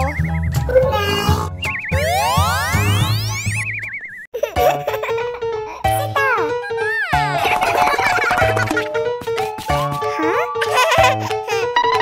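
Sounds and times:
children's background music: 0.0 - 3.6, 4.4 - 12.0
warbling whistle tone: 1.6 - 4.3.

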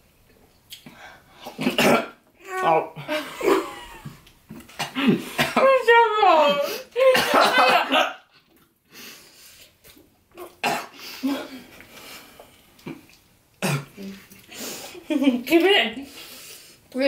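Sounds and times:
people coughing: 1.6 - 2.2, 4.8 - 5.7, 7.0 - 8.2, 10.6 - 11.6
young people laughing: 7.0 - 8.2.

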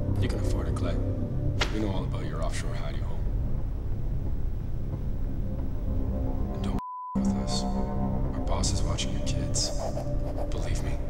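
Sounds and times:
low rumbling drone: 0.0 - 9.4.

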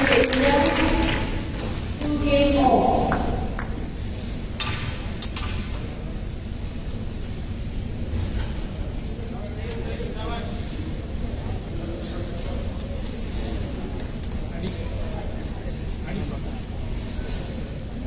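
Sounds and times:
person speaking: 0.0 - 1.4
crowd murmur: 0.0 - 18.0.

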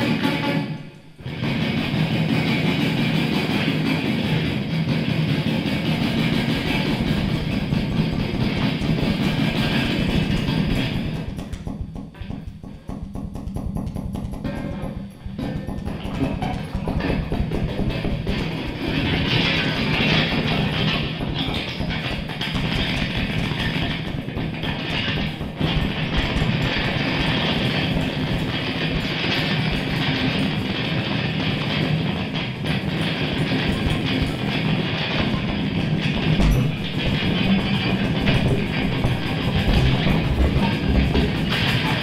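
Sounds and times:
noisy experimental guitar music: 0.0 - 42.0.

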